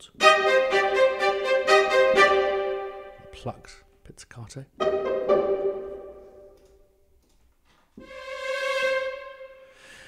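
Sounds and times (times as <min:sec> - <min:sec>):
string ensemble held notes: 0:00.0 - 0:03.6, 0:04.8 - 0:06.8, 0:08.0 - 0:09.9.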